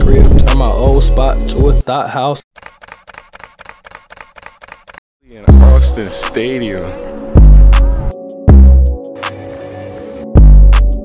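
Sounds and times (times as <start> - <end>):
camera shutter clicking: 2.6 - 5.0.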